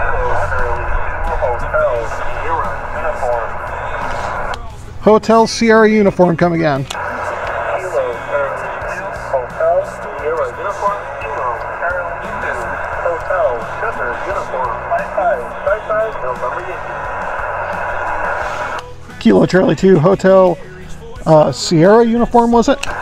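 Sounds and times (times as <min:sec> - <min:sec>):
faint garbled radio voice: 0:00.0 - 0:04.6, 0:06.8 - 0:19.4
radio static hiss: 0:00.0 - 0:20.1, 0:22.0 - 0:23.0.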